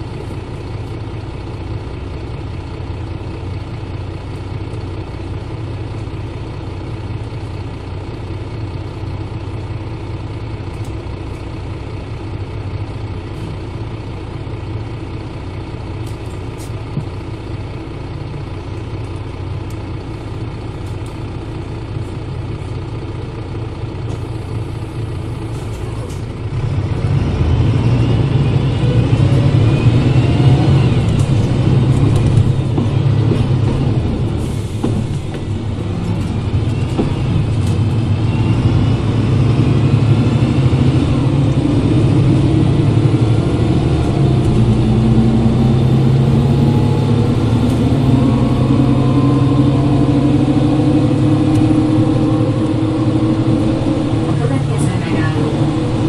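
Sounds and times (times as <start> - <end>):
bus diesel engine running: 0.0 - 56.0
differential whine: 44.0 - 56.0.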